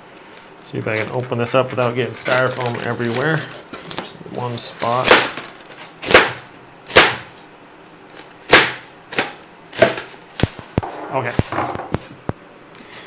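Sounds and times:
styrofoam cracking: 0.7 - 7.5.

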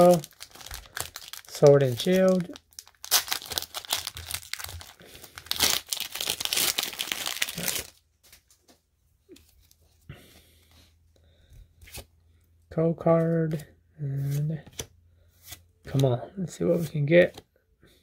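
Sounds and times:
foil pack tearing and crinkling: 0.0 - 8.0
faint card handling: 11.6 - 12.1, 13.0 - 17.5.

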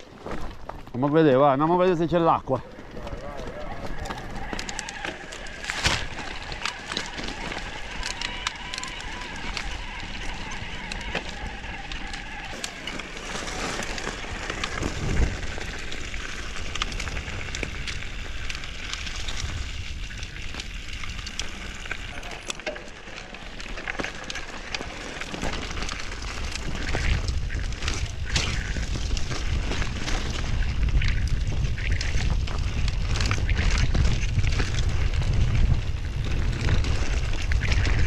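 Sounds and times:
bike rattling and clicking: 0.0 - 38.0
tyres crunching over stones: 0.0 - 38.0.

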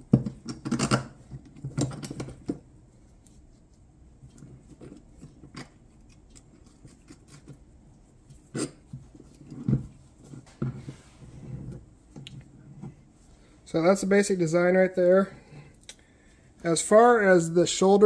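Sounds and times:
steel parts clinking and knocking: 0.2 - 2.6.

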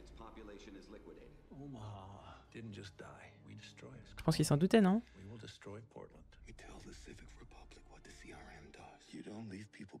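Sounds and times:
faint male dialogue from tv: 0.0 - 4.2, 5.0 - 10.0.

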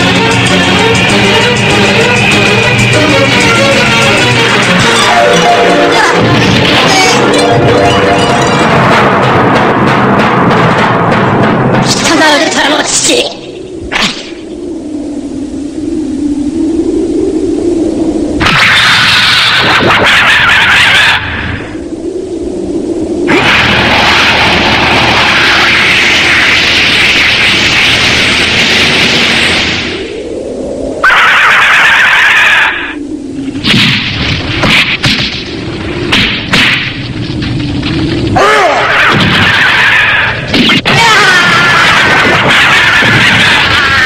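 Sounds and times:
low wavering electronic hum: 0.0 - 20.1, 21.2 - 31.0, 32.9 - 38.4
low rumble: 0.0 - 44.0.

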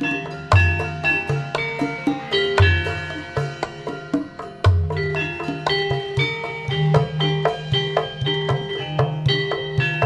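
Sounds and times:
gamelan metallophone notes: 0.0 - 10.0.

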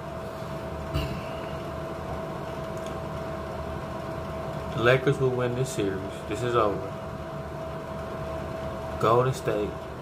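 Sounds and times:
steady machine hum: 0.0 - 10.0.

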